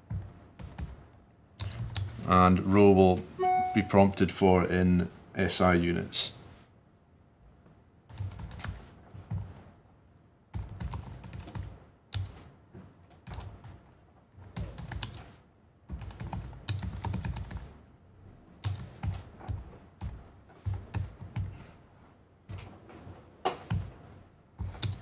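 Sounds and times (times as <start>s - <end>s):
typing on computer keyboard: 0.6s - 1.0s, 1.6s - 2.2s, 8.1s - 9.4s, 10.5s - 12.4s, 14.4s - 15.3s, 15.9s - 17.7s, 18.6s - 21.6s, 24.6s - 25.0s.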